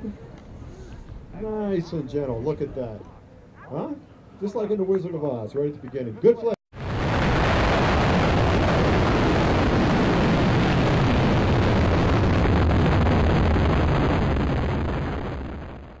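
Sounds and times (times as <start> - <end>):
rocket motor roaring: 6.8 - 16.0.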